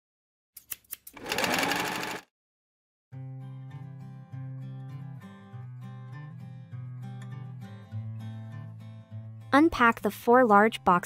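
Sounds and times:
sewing machine stitch clicks: 1.1 - 2.2
sewing machine stitching: 1.2 - 2.3.

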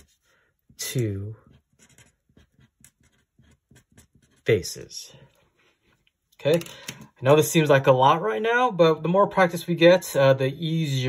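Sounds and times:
pen scratching on paper: 0.0 - 0.3, 1.4 - 4.5.

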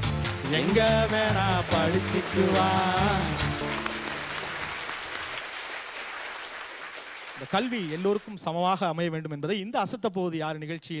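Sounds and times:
man singing with backing music: 0.4 - 3.6
audience applause: 0.6 - 8.4.

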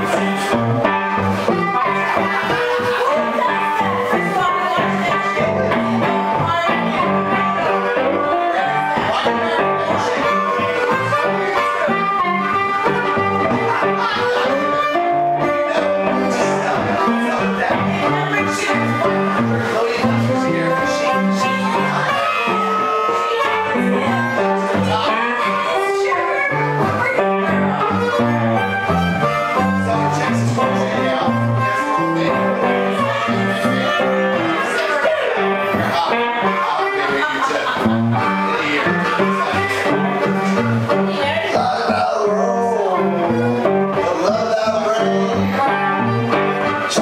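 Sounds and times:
harmonica holding long notes: 0.0 - 47.0
plucked guitar rhythm: 0.0 - 47.0.

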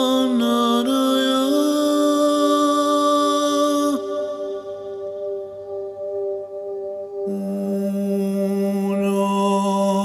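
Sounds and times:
chanted vocal note: 0.0 - 10.0.

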